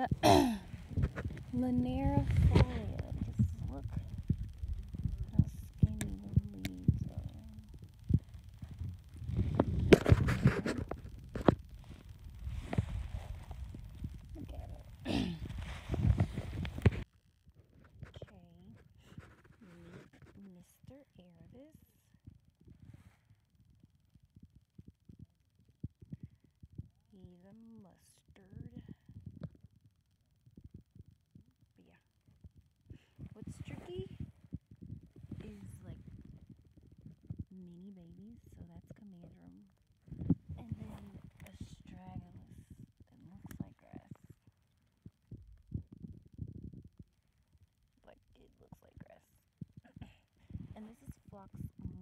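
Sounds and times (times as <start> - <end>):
low thumps on microphone: 0.1 - 17.0, 32.4 - 44.4, 45.0 - 47.1.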